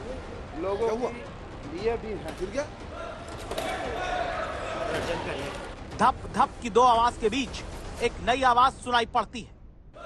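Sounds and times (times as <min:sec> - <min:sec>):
men's raised voices: 0:02.9 - 0:09.2.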